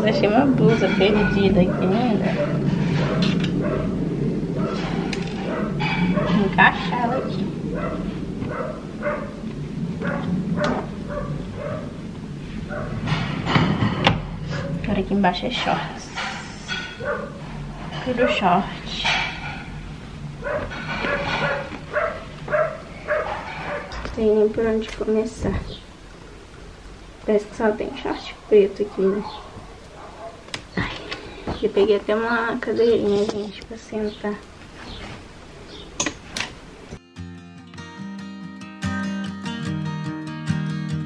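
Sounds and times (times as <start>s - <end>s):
acoustic guitar music: 0.0s - 25.4s, 36.2s - 41.0s
dog barking: 1.6s - 4.0s, 4.6s - 6.5s, 7.7s - 9.4s, 10.0s - 12.0s, 12.7s - 13.1s, 14.5s - 14.8s, 17.0s - 17.4s, 20.4s - 24.0s, 28.3s - 30.5s.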